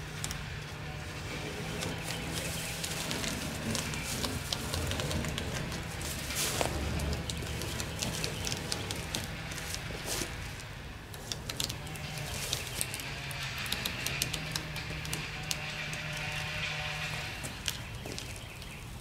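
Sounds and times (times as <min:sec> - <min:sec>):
tape peeling with crackling rips: 0:00.0 - 0:19.0.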